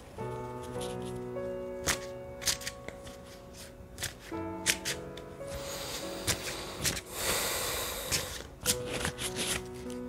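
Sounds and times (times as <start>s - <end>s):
background music with held notes: 0.0s - 10.0s
cards being shuffled: 0.3s - 7.4s, 8.0s - 10.0s.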